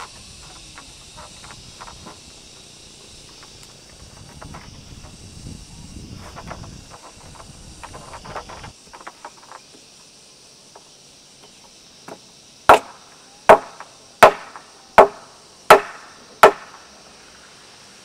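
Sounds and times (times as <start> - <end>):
hammer blows on wooden post: 12.7 - 16.8.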